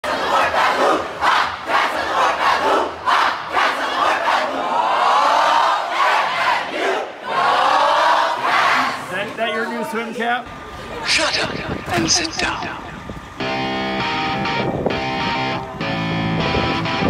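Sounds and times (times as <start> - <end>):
team shouting a cheer: 0.1 - 9.1.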